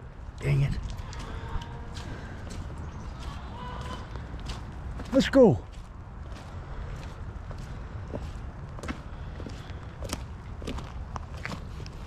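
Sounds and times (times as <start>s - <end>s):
footsteps on wet grass and gravel: 0.0s - 12.0s
steady low rumble: 0.0s - 12.0s.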